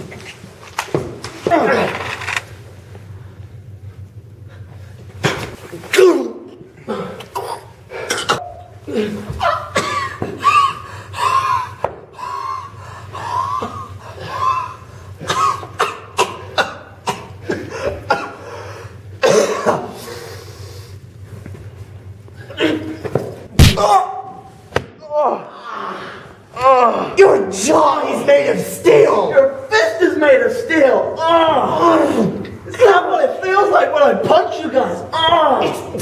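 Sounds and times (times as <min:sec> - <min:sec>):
men grunting and groaning: 0:01.4 - 0:02.2, 0:05.7 - 0:15.3, 0:25.0 - 0:27.8, 0:30.9 - 0:33.8, 0:34.8 - 0:36.0
loud impact: 0:23.5 - 0:24.1.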